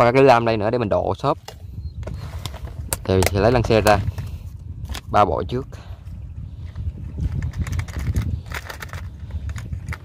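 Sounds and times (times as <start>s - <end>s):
steady low rumble: 0.0s - 10.0s
fishing rigs clicking in plastic box: 7.3s - 10.0s.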